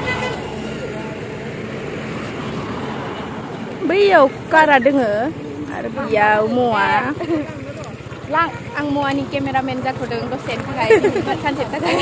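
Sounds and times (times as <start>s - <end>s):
motorbike passing close: 0.0s - 12.0s
road traffic: 0.0s - 12.0s.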